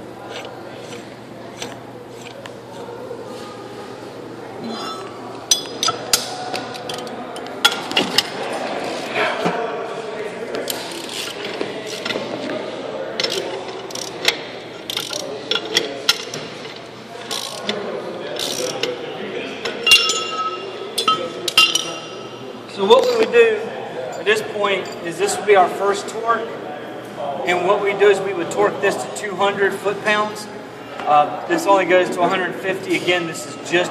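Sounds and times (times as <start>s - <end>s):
hand ratchet clicking: 0.3s - 2.4s, 10.7s - 12.2s, 13.2s - 17.8s, 18.4s - 18.9s.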